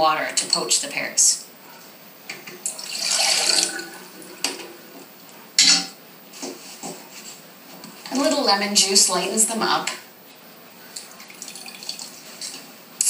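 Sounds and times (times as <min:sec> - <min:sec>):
water poured into a saucepan: 0:02.7 - 0:04.2, 0:11.2 - 0:12.6.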